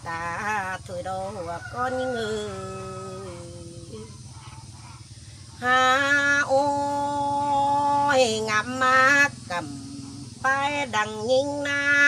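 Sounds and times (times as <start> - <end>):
woman singing long held notes: 0.0 - 4.2, 5.6 - 12.0.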